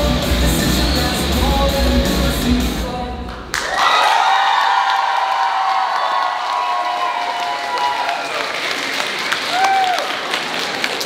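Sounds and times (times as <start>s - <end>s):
audience applauding and cheering: 3.5s - 11.0s.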